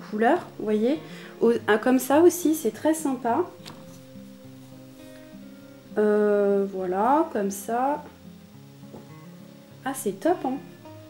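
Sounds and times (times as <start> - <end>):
faint background music: 0.0 - 11.0
light steady hiss: 0.0 - 11.0.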